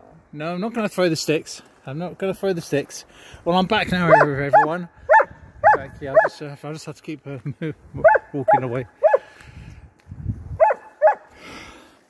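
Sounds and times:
dog yapping: 4.1 - 6.4, 10.6 - 11.3.

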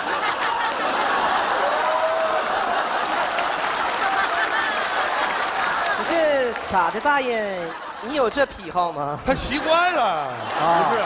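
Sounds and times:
audience applauding: 0.0 - 11.0.

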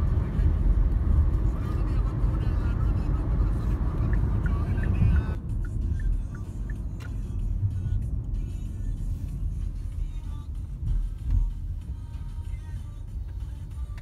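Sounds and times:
car engine and tyre rumble: 0.0 - 14.0.

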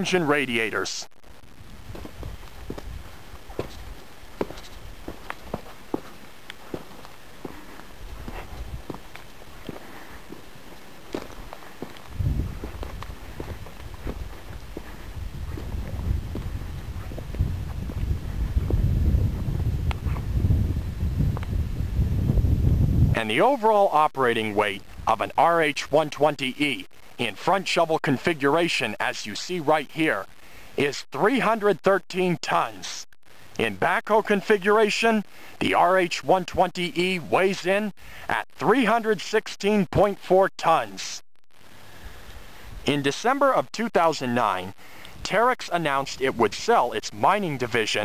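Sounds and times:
footsteps crunching on rocky ground: 1.4 - 20.5
wind buffeting microphone: 1.5 - 5.7, 7.4 - 10.4, 11.2 - 23.2.

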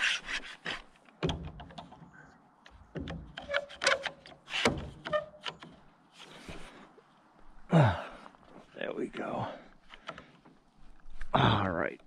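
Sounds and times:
wooden board creaking: 0.0 - 6.8
wood rubbing: 0.0 - 7.0.

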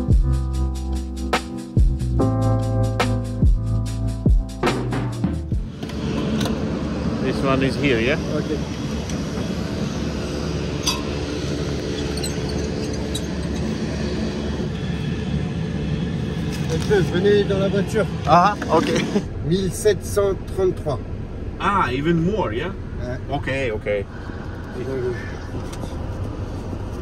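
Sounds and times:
background music with drum beat: 0.0 - 5.7
low vehicle engine hum: 0.0 - 27.0
clink: 10.8 - 11.1.

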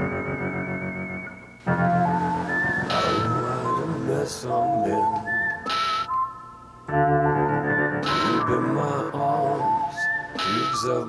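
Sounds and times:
keyboard chords: 0.0 - 11.0
whistle-like melody: 0.0 - 11.0.

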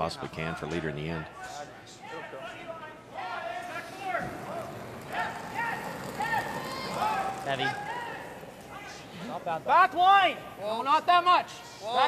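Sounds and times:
arena background noise: 0.0 - 12.0
men talking indistinctly: 0.0 - 12.0.

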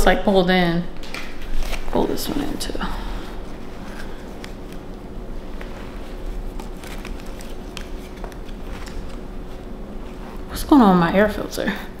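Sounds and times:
jacket rustling: 1.0 - 11.1.

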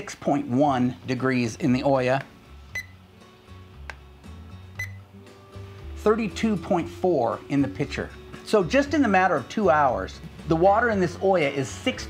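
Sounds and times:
soft background music: 0.0 - 12.0
thermometer beep: 2.7 - 3.0, 4.8 - 5.0.

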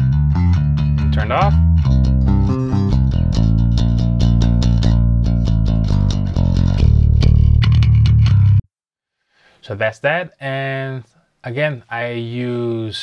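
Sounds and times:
electric bass guitar riff: 0.0 - 8.6.

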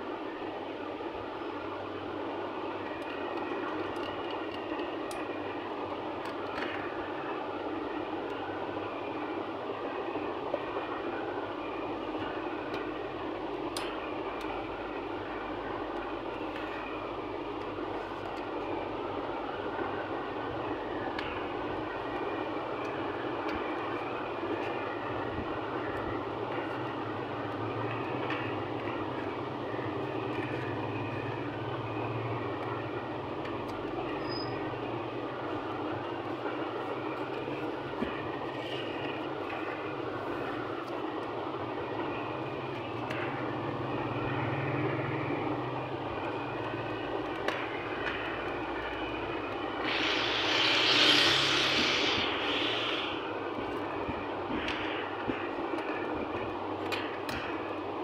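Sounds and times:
mechanical drone: 41.8 - 57.5
rushing hiss: 49.7 - 53.5.

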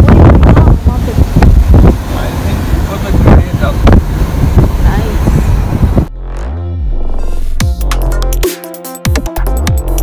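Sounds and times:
wind buffeting microphone: 0.0 - 6.1.

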